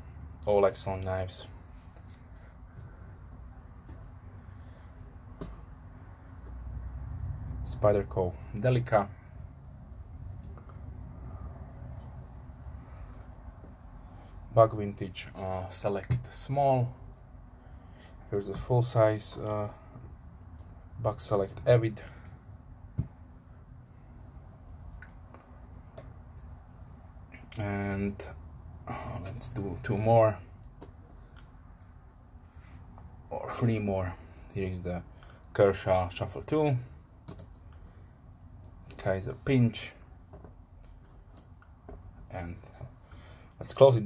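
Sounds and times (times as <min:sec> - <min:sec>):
low room hum: 0:00.0 - 0:44.0.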